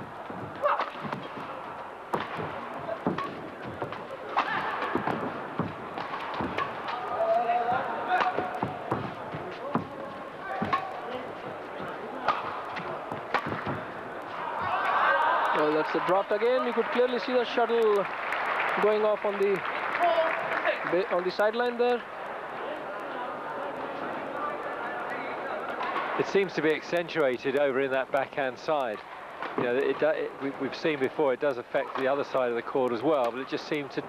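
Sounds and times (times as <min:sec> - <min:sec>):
crowd murmur: 0:00.0 - 0:15.4, 0:22.0 - 0:26.2
rackets hitting shuttlecock: 0:00.2 - 0:14.8.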